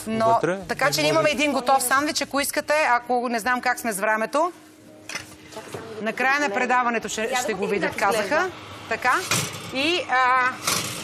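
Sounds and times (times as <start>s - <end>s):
woman talking: 0.0s - 4.6s, 5.5s - 10.6s.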